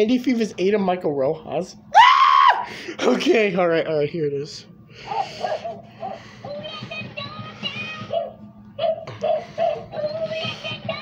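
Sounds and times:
toy playing song: 0:06.4 - 0:11.0.

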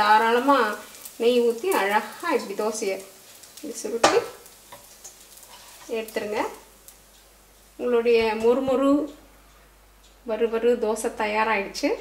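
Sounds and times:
frying in oil: 0:00.0 - 0:12.0
spatula scraping a pan: 0:04.7 - 0:06.0.

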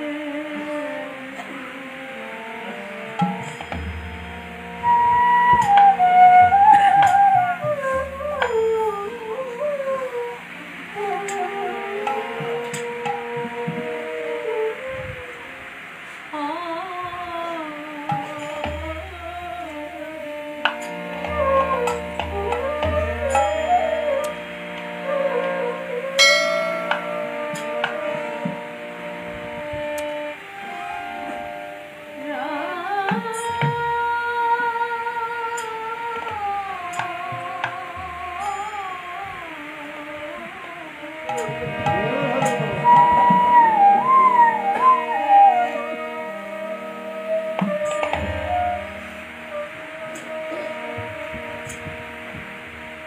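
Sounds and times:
devotional music with harmonium: 0:00.0 - 0:53.0
bright metallic strike ringing: 0:26.2 - 0:27.8.

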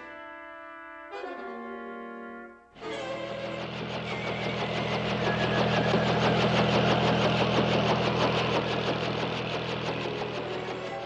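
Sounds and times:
motor humming with fast chatter: 0:02.8 - 0:11.0.

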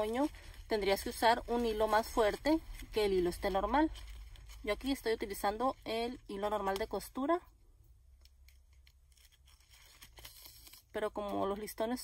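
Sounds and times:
ribbon rustling and ticking: 0:00.0 - 0:11.6.

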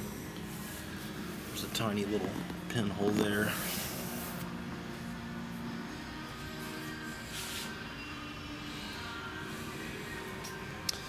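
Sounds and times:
faint background music: 0:00.0 - 0:11.0
steady room hum: 0:00.0 - 0:11.0.

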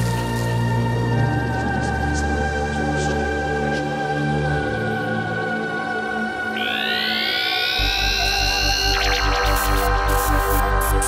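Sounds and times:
psytrance electronic music: 0:06.5 - 0:11.0
rising synth sweep: 0:06.6 - 0:11.0.

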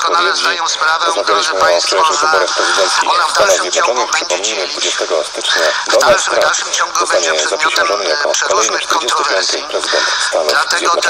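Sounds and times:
man talking on radio: 0:00.0 - 0:11.0.

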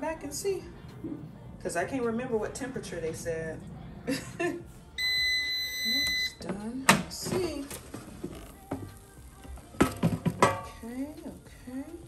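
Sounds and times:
faint background music: 0:00.0 - 0:12.0
metal basket knock: 0:09.8 - 0:10.8.

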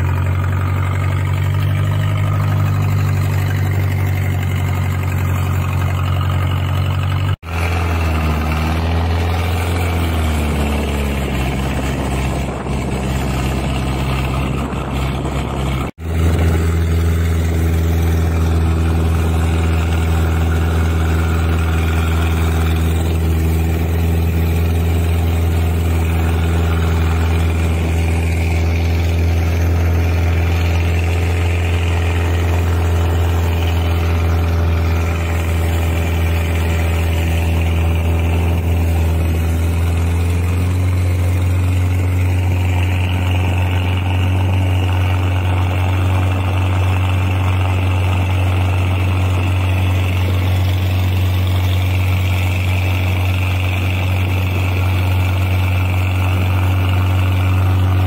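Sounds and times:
motor boat engine running: 0:00.0 - 0:58.0
water rushing along hull: 0:00.0 - 0:58.0.

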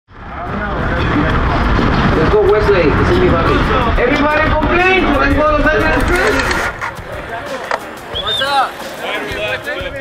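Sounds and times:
steady low rumble: 0:00.1 - 0:06.0
people talking: 0:00.3 - 0:10.0.

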